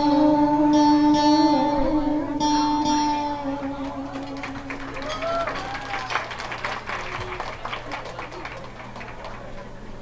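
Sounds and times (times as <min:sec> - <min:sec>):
audience clapping: 0:03.7 - 0:09.9.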